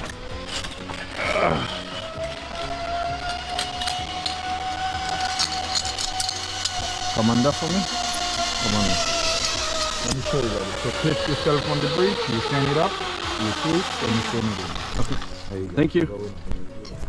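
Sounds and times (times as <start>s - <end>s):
zipline pulleys whining on cable: 0.0s - 15.8s.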